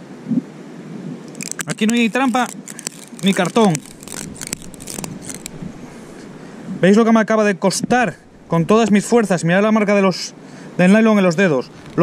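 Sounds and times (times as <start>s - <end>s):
fishing line scraping on rock: 1.3s - 6.8s.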